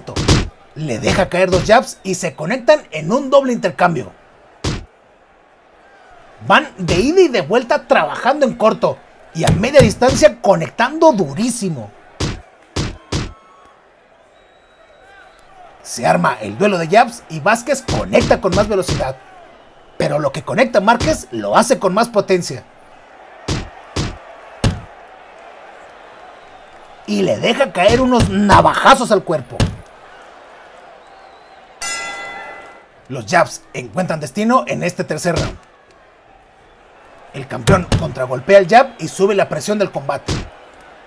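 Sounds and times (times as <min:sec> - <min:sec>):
faint arena crowd noise: 0:00.0 - 0:41.0
boxing glove punch impact: 0:00.2 - 0:00.5, 0:04.7 - 0:04.9
boxing ring bell: 0:31.8 - 0:32.9.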